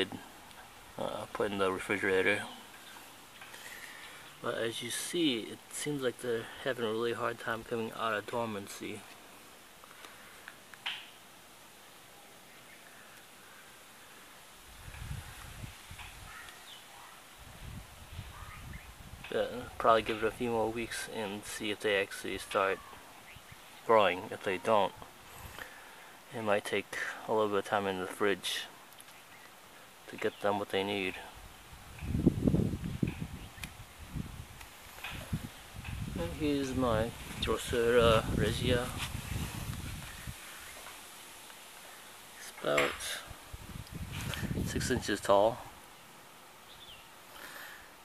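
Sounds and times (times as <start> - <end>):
faint bird chirps: 16.2 - 17.3, 18.0 - 19.0
low rumble on microphone: 35.2 - 40.4.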